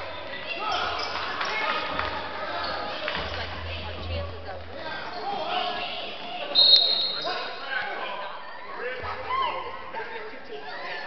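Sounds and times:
echoing indistinct chatter: 0:00.0 - 0:11.0.

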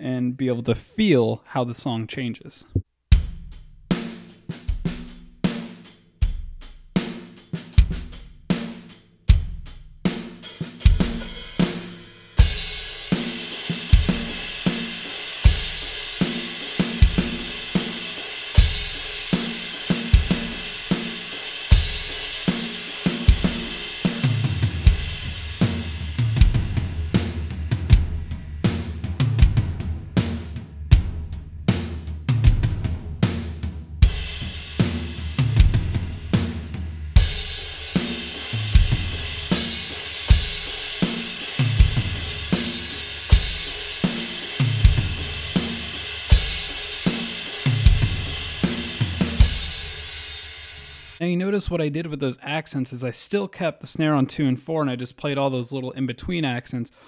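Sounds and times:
electronic drum kit groove: 0:03.1 - 0:51.2
low tom notes: 0:23.3 - 0:49.9.

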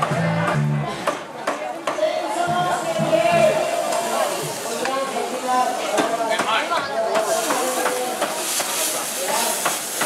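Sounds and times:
crowd chatter: 0:00.0 - 0:10.0
food sizzling in a wok: 0:03.5 - 0:06.6, 0:07.2 - 0:10.0.

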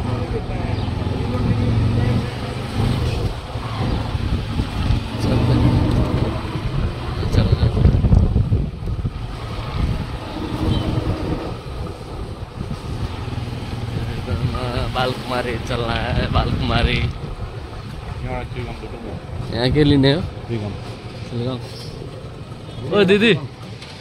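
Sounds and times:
wind rumbling on microphone: 0:01.1 - 0:20.6.

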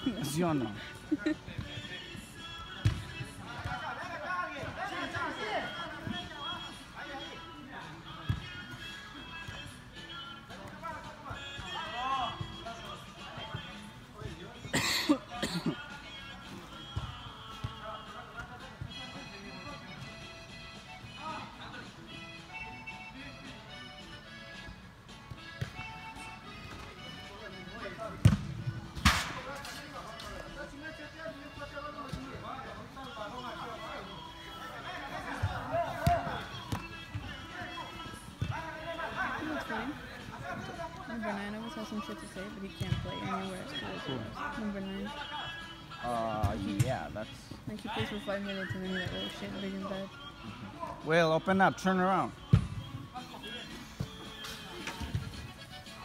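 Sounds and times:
background music: 0:00.0 - 0:56.0
ball kick thuds: 0:02.8 - 0:03.7, 0:28.2 - 0:29.5, 0:35.4 - 0:37.8, 0:52.5 - 0:52.8.

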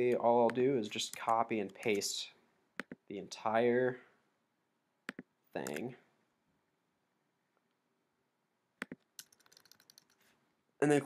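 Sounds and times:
keyboard typing: 0:00.0 - 0:02.1, 0:05.1 - 0:05.9, 0:08.8 - 0:10.3.

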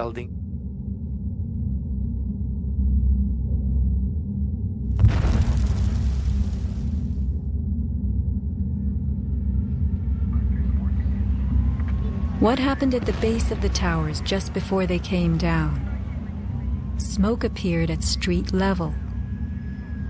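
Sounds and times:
deep low rumble: 0:00.0 - 0:20.0.

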